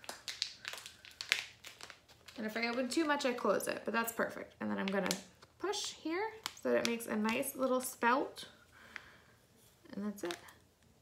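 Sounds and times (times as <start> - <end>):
plastic bag crinkling open: 0.0 - 3.4, 4.7 - 7.8.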